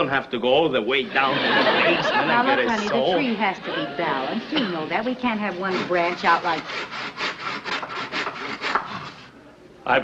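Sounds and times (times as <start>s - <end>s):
hand saw cutting a branch: 5.6s - 9.2s.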